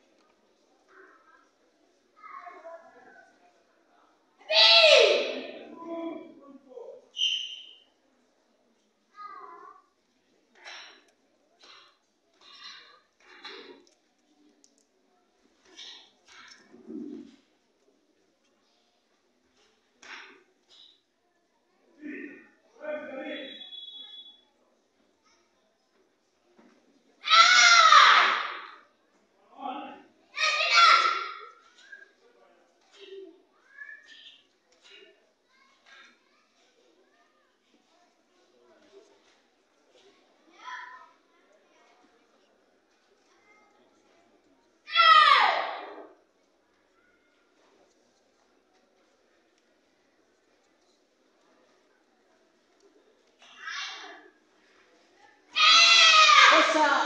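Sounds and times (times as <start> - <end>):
child shouting: 4.4 - 5.7, 27.2 - 28.7, 30.4 - 31.4, 44.9 - 45.9, 55.6 - 57.0.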